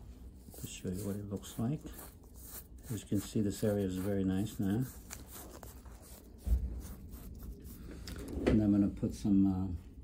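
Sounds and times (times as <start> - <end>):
gauze pad rubbing skin: 0.0 - 7.9
dull low thump: 6.4 - 7.1.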